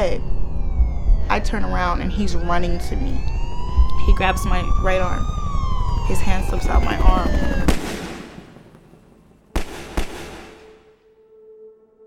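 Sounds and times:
gunshots with long echo: 5.2 - 11.0.

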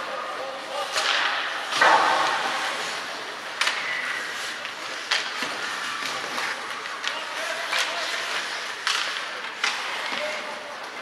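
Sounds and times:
arena background noise: 0.0 - 11.0
hockey stick and puck cracks: 0.8 - 10.6.

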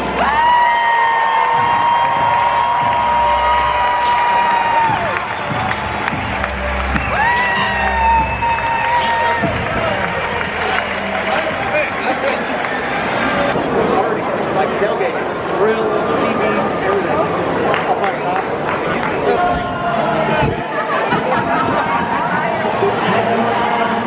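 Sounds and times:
ballpark crowd noise: 0.0 - 24.0.

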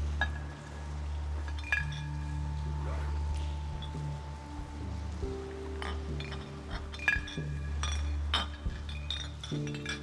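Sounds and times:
background music: 0.0 - 10.0
glass bottle clinking: 1.4 - 2.8, 5.8 - 10.0.

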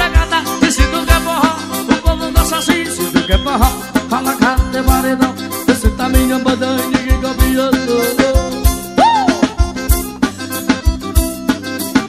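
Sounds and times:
accordion melody: 0.0 - 12.0
steady drum beat: 0.0 - 12.0.

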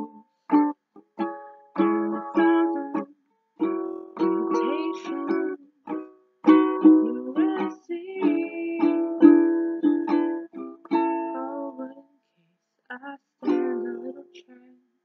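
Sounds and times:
ukulele strumming chords: 0.0 - 12.0, 13.4 - 14.4.

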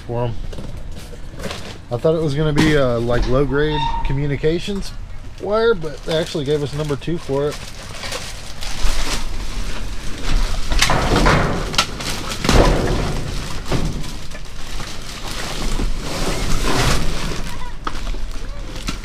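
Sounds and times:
rubbish shifting thumps: 0.4 - 19.0
plastic trash bag rustling: 5.4 - 19.0.

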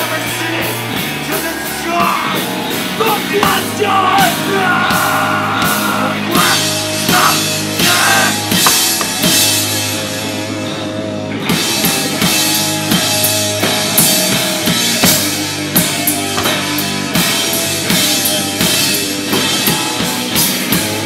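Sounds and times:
drum kit pounding: 0.0 - 10.1, 11.5 - 21.0
electric guitars holding chords: 0.0 - 21.0.

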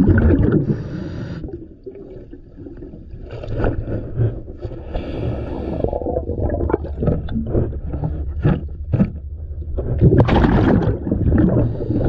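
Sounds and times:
bubbling exhaust underwater: 0.0 - 12.0.

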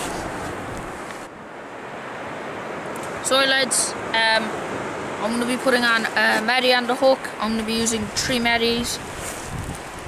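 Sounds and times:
wind buffeting microphone: 2.2 - 10.0.

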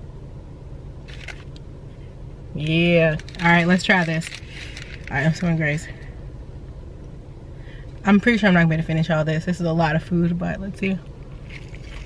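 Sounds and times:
car engine idling: 0.0 - 12.0
paper wrapper rustling: 3.1 - 5.4.

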